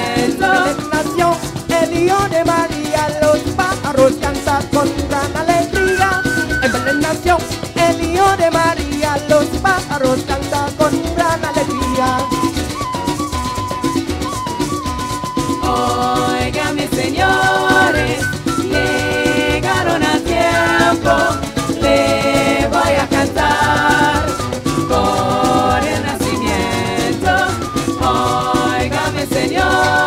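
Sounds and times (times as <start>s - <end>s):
latin folk band playing: 0.0s - 30.0s.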